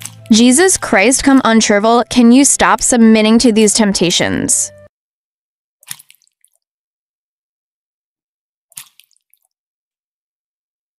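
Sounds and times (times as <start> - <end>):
wet squishy sound effect: 5.8 - 6.6, 8.8 - 9.5.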